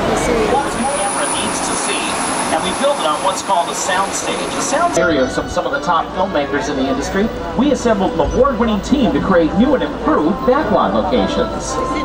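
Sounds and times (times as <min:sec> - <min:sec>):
high steady whine: 0:00.0 - 0:12.0
tour guide's voice: 0:00.0 - 0:12.0
tram rushing noise: 0:00.0 - 0:12.0.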